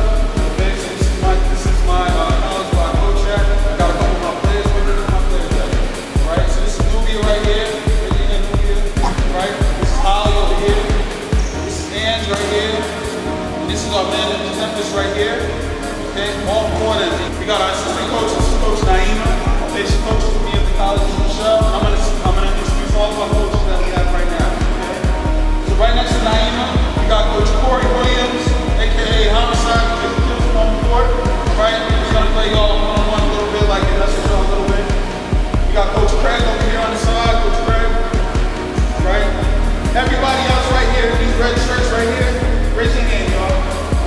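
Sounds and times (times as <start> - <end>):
music with deep bass drum beat: 0.0 - 14.3, 14.9 - 44.0
voice over music: 0.0 - 44.0.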